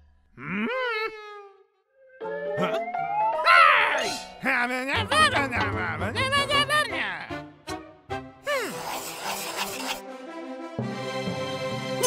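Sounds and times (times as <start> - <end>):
background music: 2.0 - 12.0
eraser scrubbing on paper: 8.6 - 10.0.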